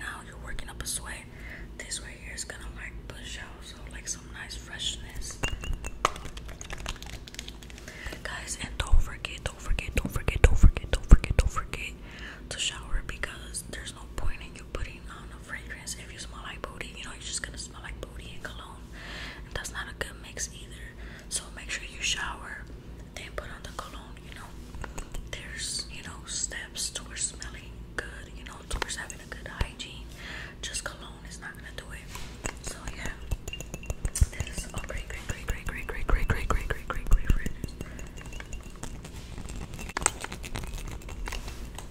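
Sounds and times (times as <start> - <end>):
person whispering: 8.1 - 18.8, 34.2 - 37.6.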